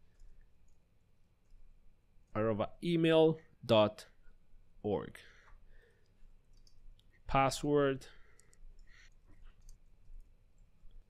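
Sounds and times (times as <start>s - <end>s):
computer keyboard keystrokes: 6.5s - 6.8s, 8.3s - 10.3s.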